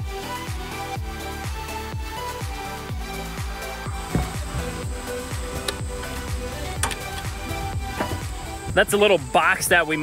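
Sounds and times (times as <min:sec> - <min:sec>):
electronic music: 0:00.1 - 0:10.0
bass thumps: 0:03.0 - 0:09.2.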